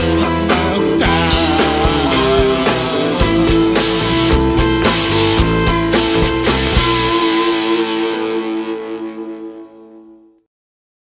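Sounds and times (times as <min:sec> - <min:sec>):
distorted electric guitar chord: 0:00.0 - 0:10.4.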